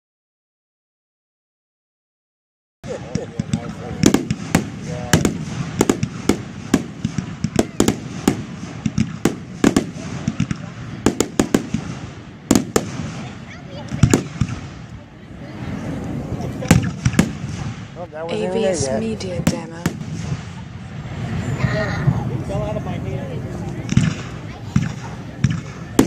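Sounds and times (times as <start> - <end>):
fireworks bursts and bangs: 2.8 - 22.6, 23.6 - 26.0.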